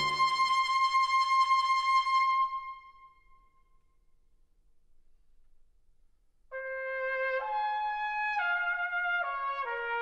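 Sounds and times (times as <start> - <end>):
held high brass note: 0.0 - 0.5.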